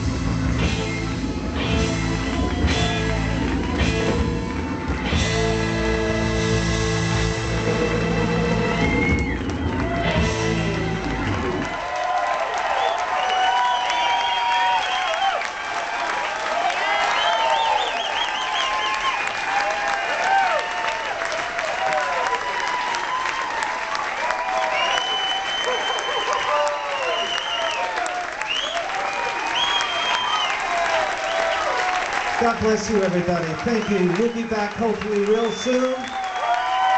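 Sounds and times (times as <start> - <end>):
audience applauding and cheering: 0.0 - 36.9
high whistles: 8.6 - 9.9, 12.8 - 15.4, 17.1 - 19.4, 24.6 - 31.6.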